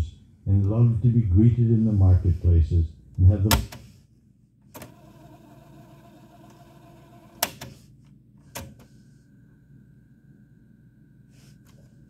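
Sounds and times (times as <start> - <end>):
tape fast-forward motor whir: 4.8 - 7.5.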